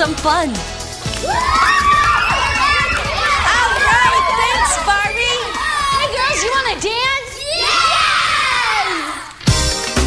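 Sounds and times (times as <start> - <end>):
children shouting and cheering: 1.0 - 9.4.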